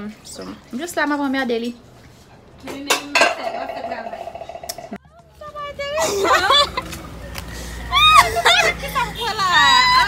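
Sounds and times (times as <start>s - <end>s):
dishes clinking in a basin: 2.7s - 4.3s.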